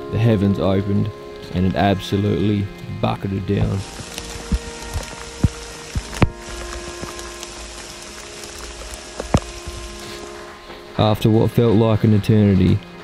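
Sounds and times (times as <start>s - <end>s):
soft background music: 0.0s - 13.0s
heavy rain on rain gear: 3.4s - 11.3s.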